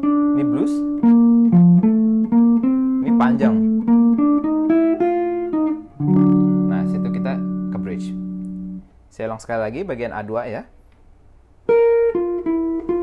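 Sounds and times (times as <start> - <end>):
electric guitar jazz line: 0.0 - 8.9, 11.6 - 13.0.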